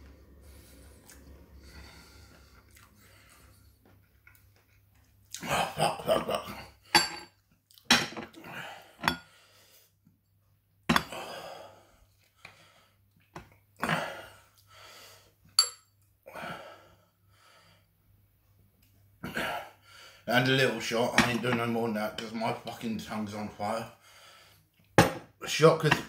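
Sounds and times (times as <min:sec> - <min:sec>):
man breathing hard: 0:00.3 - 0:03.8, 0:08.4 - 0:09.9, 0:13.9 - 0:15.4, 0:16.3 - 0:17.9, 0:24.0 - 0:24.7
glass clink: 0:07.0 - 0:07.3, 0:15.6 - 0:15.9.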